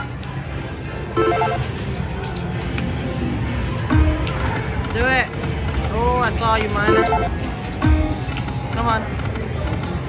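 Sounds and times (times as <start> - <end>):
slot machine chime tones: 1.1 - 1.7, 6.9 - 7.3.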